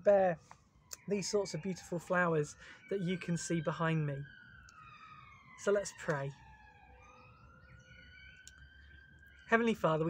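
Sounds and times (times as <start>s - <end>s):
faint siren wailing: 0.0s - 10.0s.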